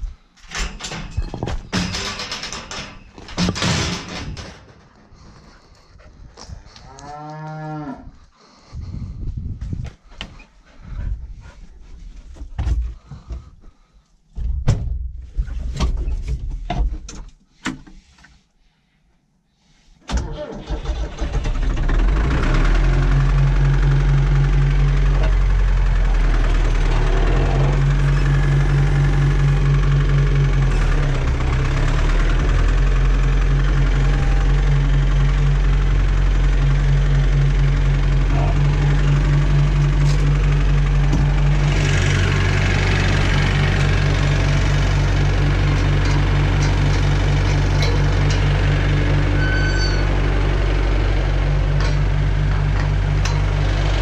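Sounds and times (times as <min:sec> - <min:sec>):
tractor diesel engine running: 0:00.0 - 0:06.8, 0:20.1 - 0:54.0.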